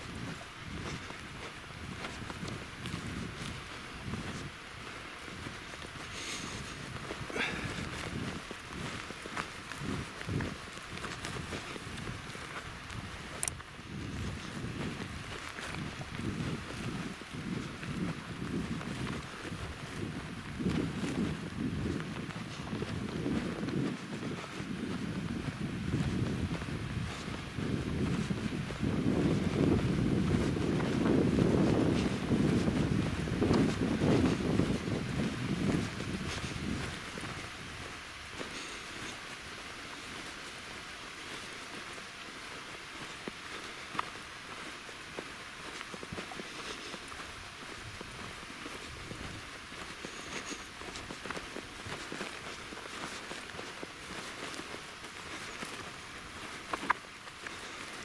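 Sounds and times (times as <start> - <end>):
wind buffeting microphone: 0.0 - 40.6, 44.6 - 58.0.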